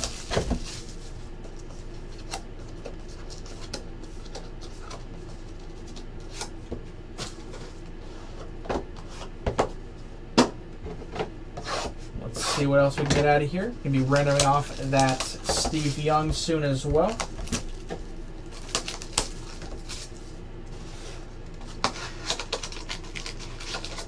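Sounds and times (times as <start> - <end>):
plastic shrink wrap crinkling: 14.0 - 16.2, 17.0 - 20.2, 22.1 - 24.0.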